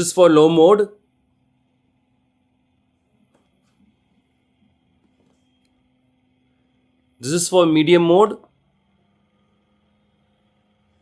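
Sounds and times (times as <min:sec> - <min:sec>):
desk fan motor humming: 0:00.0 - 0:11.0.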